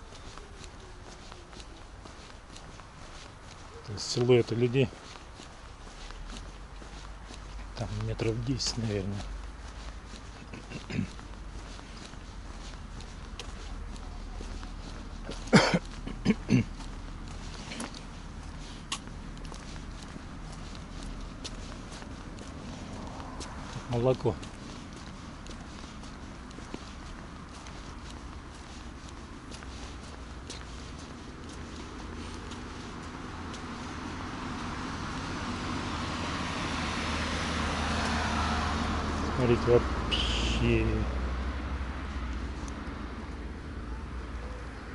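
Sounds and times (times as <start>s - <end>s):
footsteps on wet pavement: 0.0s - 44.9s
low outdoor rumble: 0.0s - 44.9s
vehicle engine and tyre noise: 0.0s - 44.9s.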